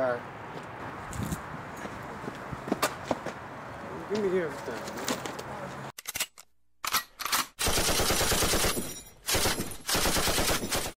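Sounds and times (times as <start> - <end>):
automatic gunfire: 7.6 - 11.0.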